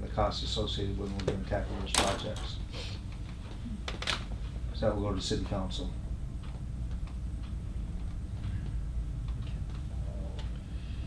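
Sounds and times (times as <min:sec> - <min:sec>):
low room hum: 0:00.0 - 0:11.0
faint clicks and taps: 0:06.4 - 0:10.7.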